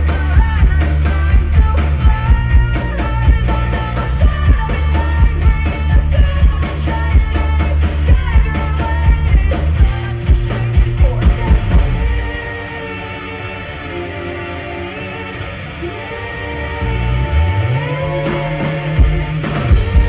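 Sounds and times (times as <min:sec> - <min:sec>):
drums and bass: 0:00.0 - 0:20.0
rock band playing live: 0:00.0 - 0:20.0
woman singing: 0:00.0 - 0:20.0.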